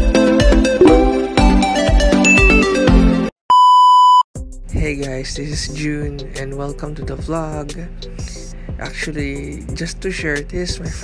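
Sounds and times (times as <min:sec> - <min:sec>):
background music: 0:00.0 - 0:03.3
loud electronic beep: 0:00.8 - 0:01.2.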